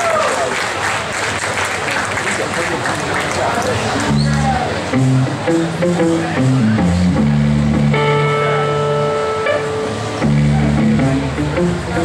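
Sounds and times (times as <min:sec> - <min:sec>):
live rock band playing: 0:04.1 - 0:12.0
long held guitar note: 0:04.4 - 0:12.0.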